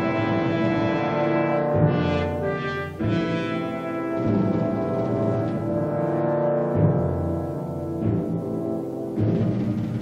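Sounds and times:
orchestral brass chords: 0:00.0 - 0:09.9
low timpani stroke: 0:00.0 - 0:10.0.

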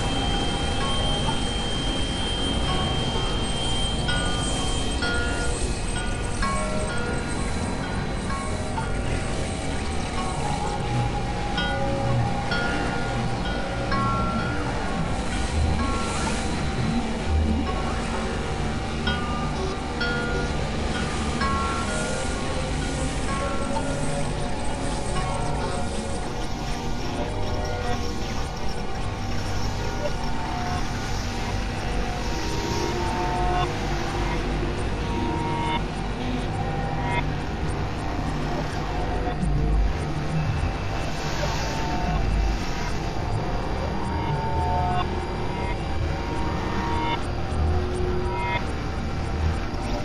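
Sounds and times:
chime-like bell tones: 0:00.0 - 0:50.0
noisy low synthesizer drone: 0:00.0 - 0:50.0.

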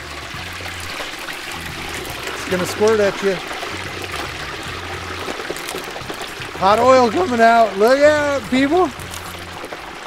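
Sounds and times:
hot oil bubbling and sizzling: 0:00.0 - 0:10.0.

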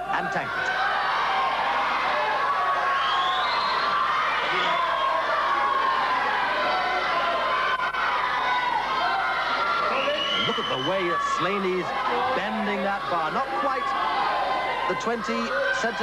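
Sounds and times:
crowd shouting and cheering: 0:00.0 - 0:16.0.

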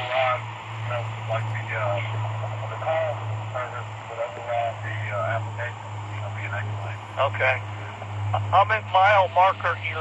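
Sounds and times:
voice through small speaker: 0:00.0 - 0:07.6
steady low hum: 0:00.0 - 0:10.0.

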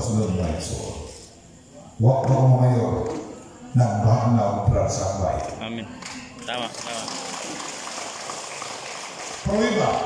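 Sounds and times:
steady background hiss: 0:00.0 - 0:10.0.

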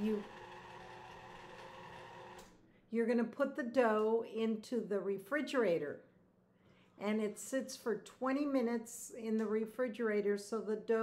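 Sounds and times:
stand mixer motor hum: 0:00.0 - 0:02.4.

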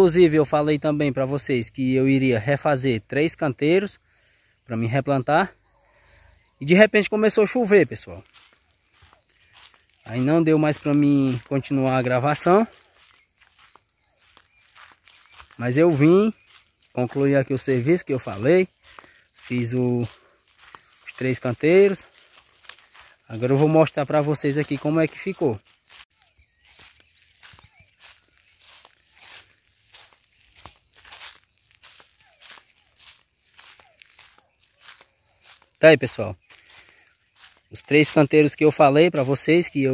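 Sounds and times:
footsteps on loose soil: 0:04.9 - 0:39.9.

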